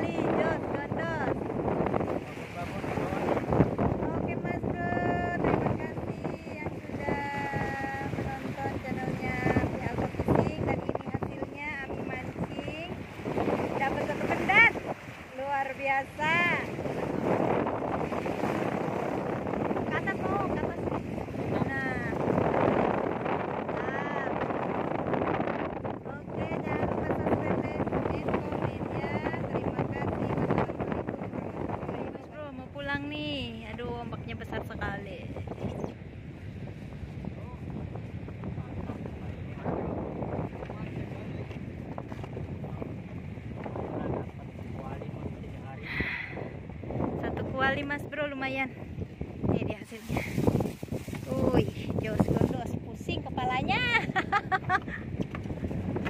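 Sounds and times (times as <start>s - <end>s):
waves breaking over rocks: 0.0s - 31.9s, 48.8s - 53.0s
wind buffeting microphone: 0.0s - 56.0s.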